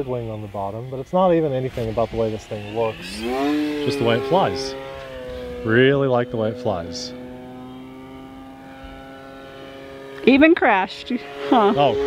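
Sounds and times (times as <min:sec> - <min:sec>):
model plane motor whining: 0:01.5 - 0:12.0.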